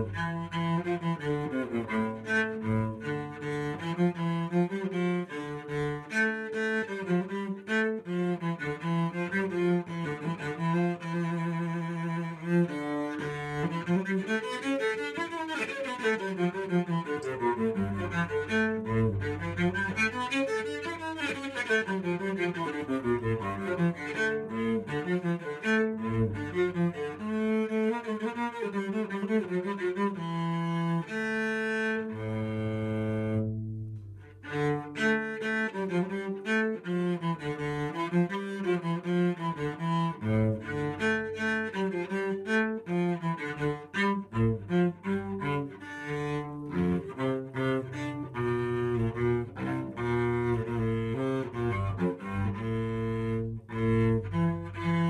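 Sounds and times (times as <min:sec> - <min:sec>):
cello played with a bow: 0:00.0 - 0:55.0.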